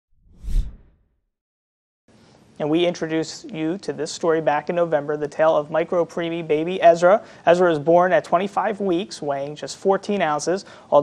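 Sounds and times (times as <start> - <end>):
whoosh with deep rumble: 0.1 - 0.9.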